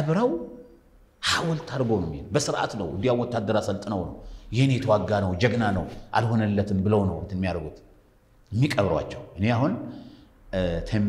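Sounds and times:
man talking: 0.0s - 0.5s, 1.2s - 7.8s, 8.5s - 9.9s, 10.5s - 11.0s.

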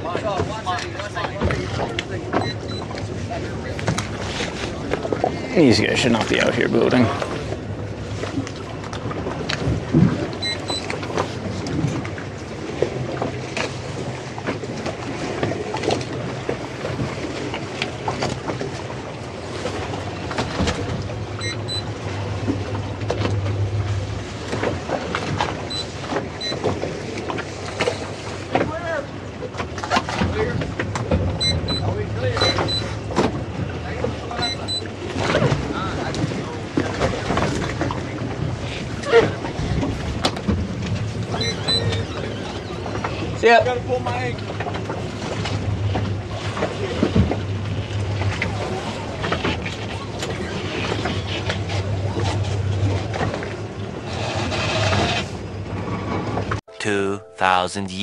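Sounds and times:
outboard motors humming: 0.0s - 58.0s.

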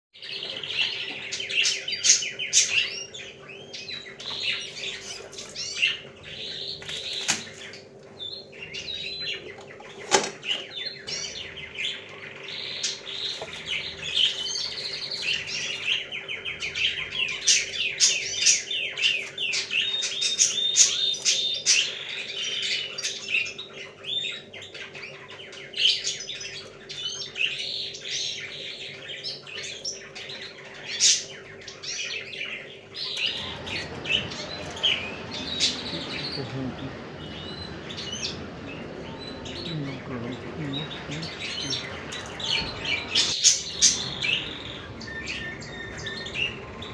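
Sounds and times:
small birds chirping: 0.1s - 46.9s
steady low hum: 32.6s - 46.9s.

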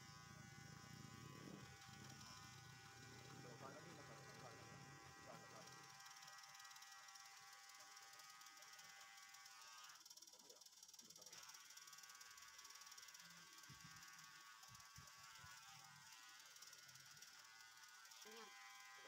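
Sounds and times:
electric hair trimmer buzzing: 0.0s - 19.0s.

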